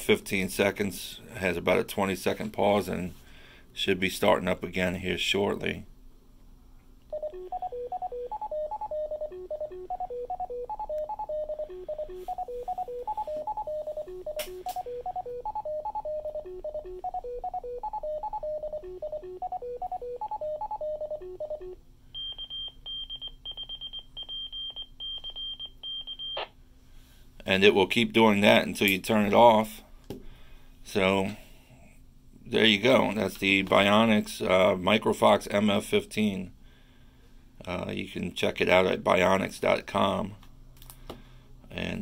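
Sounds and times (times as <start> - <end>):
morse code tones: 7.1 - 26.5
stepping tone melody from radio: 7.1 - 26.5.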